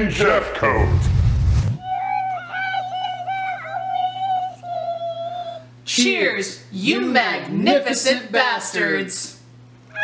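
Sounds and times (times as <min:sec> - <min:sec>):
low steady hum: 0:00.0 - 0:10.0
loud rushing noise: 0:00.8 - 0:01.8
person singing high note: 0:01.8 - 0:05.7.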